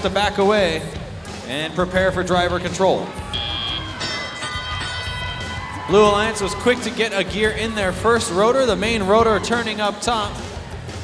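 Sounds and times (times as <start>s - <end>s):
arena crowd noise: 0.0s - 11.0s
bell ringing: 3.3s - 7.0s.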